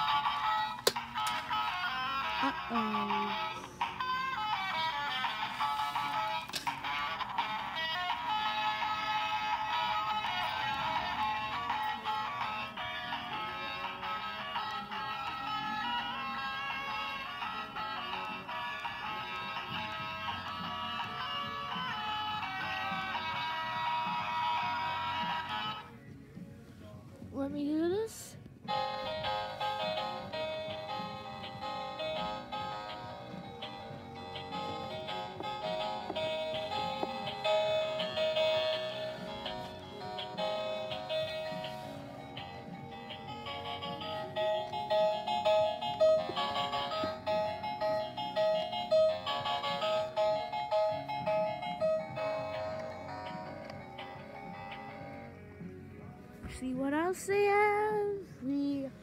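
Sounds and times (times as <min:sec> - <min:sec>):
toy music melody: 0:00.0 - 0:25.9, 0:28.7 - 0:55.4.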